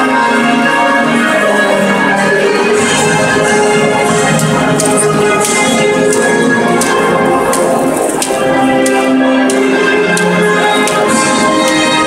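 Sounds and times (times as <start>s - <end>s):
orchestral anthem over sound system: 0.0s - 12.0s.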